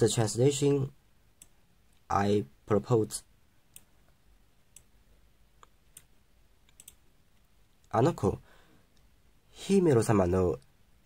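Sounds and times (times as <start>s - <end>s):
faint computer mouse clicks: 5.6s - 7.5s.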